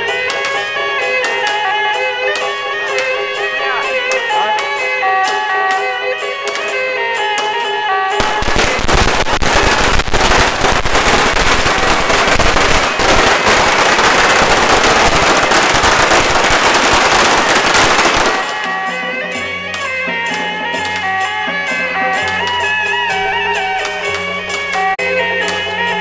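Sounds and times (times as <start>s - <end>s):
music: 0.0s - 26.0s
firecrackers crackling: 5.2s - 21.3s.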